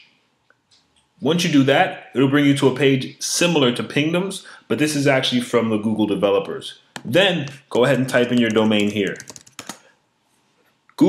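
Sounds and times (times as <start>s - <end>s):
computer keyboard keystrokes: 7.0s - 9.8s.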